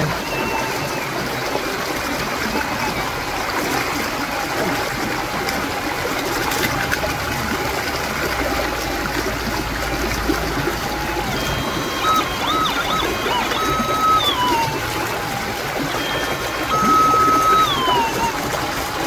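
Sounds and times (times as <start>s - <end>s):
stream rushing: 0.0s - 19.0s
metal detector tone: 11.4s - 14.8s, 15.9s - 18.4s.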